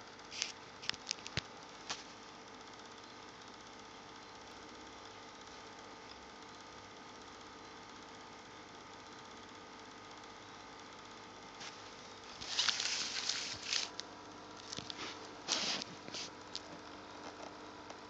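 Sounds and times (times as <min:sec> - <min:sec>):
faint steady hum with hiss: 0:00.0 - 0:18.0.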